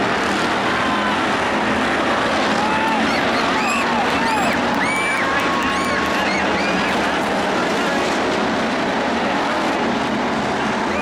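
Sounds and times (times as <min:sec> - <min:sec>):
race car engines revving: 0:00.0 - 0:11.0.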